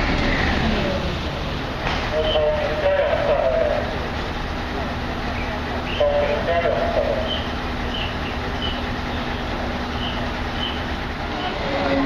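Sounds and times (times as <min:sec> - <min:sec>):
heavy engine low rumble: 0:00.0 - 0:12.0
people's voices: 0:00.7 - 0:12.0.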